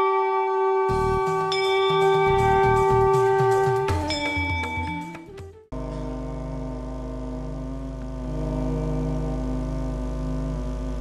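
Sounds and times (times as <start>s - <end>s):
musical drone with overtones: 0.0s - 11.0s
deep low hum: 5.6s - 11.0s.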